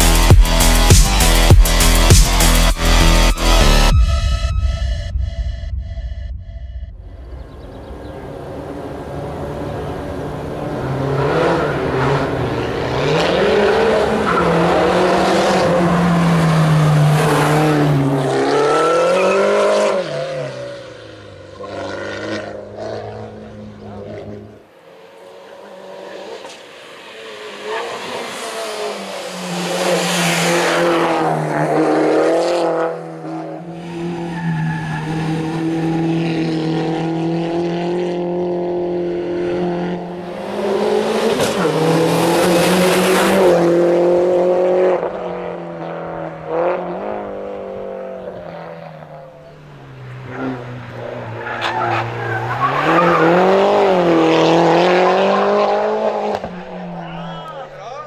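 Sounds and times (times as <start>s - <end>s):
race car engine revving past: 7.4s - 57.3s.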